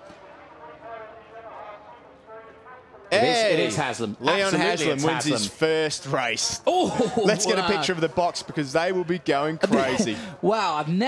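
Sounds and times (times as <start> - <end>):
commentary speech: 0.0 - 11.0.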